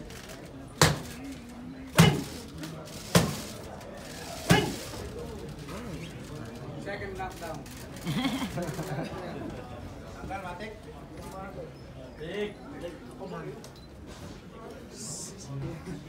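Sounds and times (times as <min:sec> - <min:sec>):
low voices murmuring: 0:00.0 - 0:16.0
punches hitting leather pads: 0:02.0 - 0:02.2.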